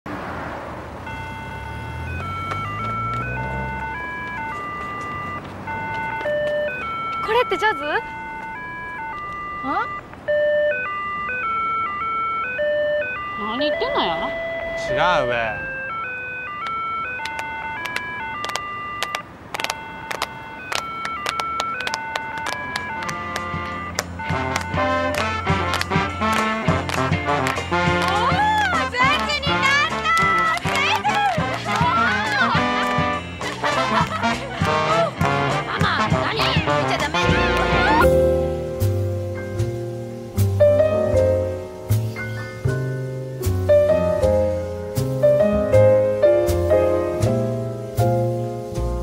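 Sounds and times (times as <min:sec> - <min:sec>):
car passing: 0:00.0 - 0:49.0
crossing signal beeping melody: 0:01.0 - 0:26.8, 0:31.7 - 0:43.2
people clapping: 0:02.2 - 0:03.3, 0:17.2 - 0:38.0.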